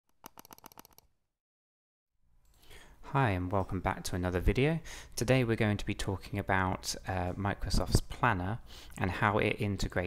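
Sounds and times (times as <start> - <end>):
rapid sharp clicks: 0.2 - 1.0.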